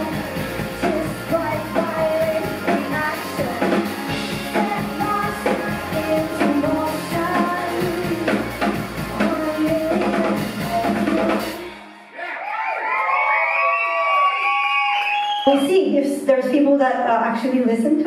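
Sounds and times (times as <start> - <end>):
drum kit beat: 0.0 - 11.8
live rock band: 0.0 - 11.9
woman singing lead vocal: 0.0 - 12.1
audience cheering and whooping: 12.1 - 15.6.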